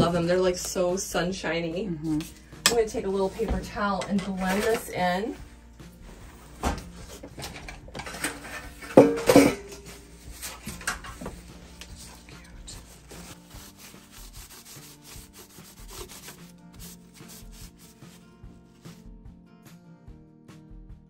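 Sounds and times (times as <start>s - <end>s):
paper towel rubbing metal grater: 11.9s - 19.0s.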